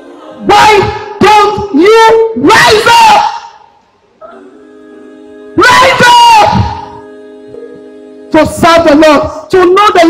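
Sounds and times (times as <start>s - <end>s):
woman shouting into microphone: 0.4s - 3.6s, 5.6s - 6.9s, 8.4s - 10.0s
held chord of background music: 4.3s - 9.6s.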